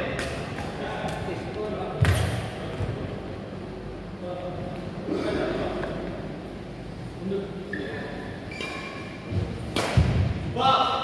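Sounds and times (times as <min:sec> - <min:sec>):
racket hitting shuttlecock: 0:09.6 - 0:10.3.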